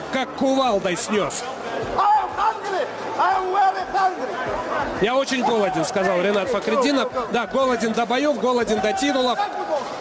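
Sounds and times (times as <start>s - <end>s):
man talking: 5.0s - 9.9s.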